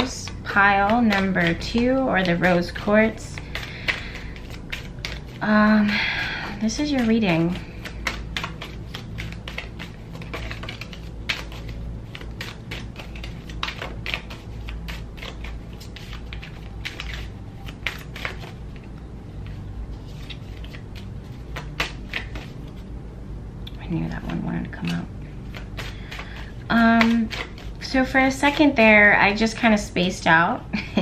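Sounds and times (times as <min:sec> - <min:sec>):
steady low hum: 0:00.0 - 0:31.0
playing cards shuffled and snapped: 0:00.8 - 0:05.4, 0:06.9 - 0:18.6, 0:20.2 - 0:22.5, 0:24.3 - 0:27.7.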